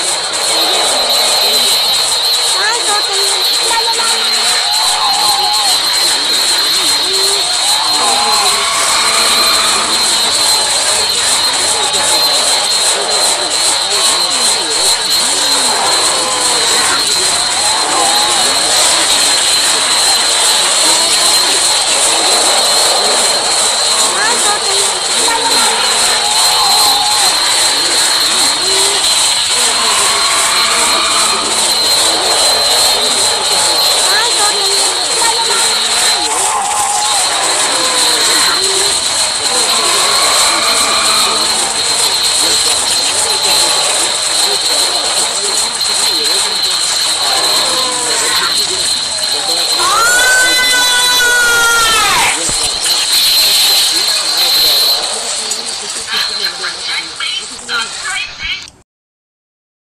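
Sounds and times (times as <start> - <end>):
steady high whine: 0.0 - 58.0
harsh cartoon soundtrack: 0.0 - 58.1
warbling voice-like fragments: 0.0 - 58.4.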